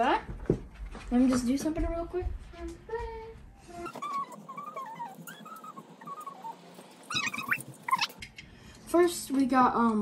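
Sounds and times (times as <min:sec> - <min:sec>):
animal whining: 0:03.7 - 0:08.4
animal sharp cry: 0:03.9 - 0:08.2.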